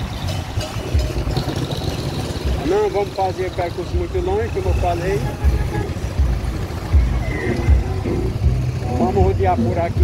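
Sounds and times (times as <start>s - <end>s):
motorcycle engine: 0.0s - 10.0s
road noise: 0.0s - 10.0s.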